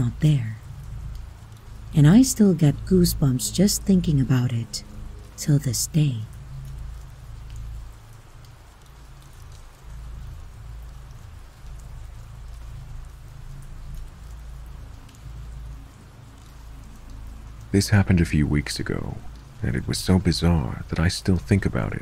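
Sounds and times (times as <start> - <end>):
rain hissing: 0.0 - 22.0.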